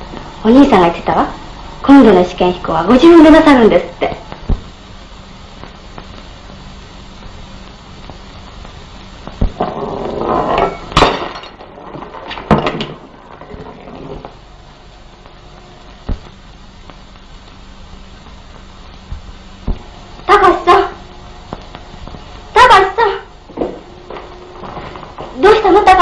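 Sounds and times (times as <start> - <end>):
film soundtrack hiss and hum: 0.0 - 26.0.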